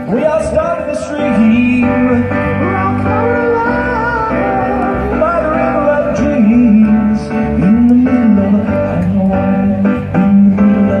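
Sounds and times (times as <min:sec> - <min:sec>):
live amplified pop song: 0:00.0 - 0:11.0
person singing long gliding notes: 0:00.0 - 0:11.0.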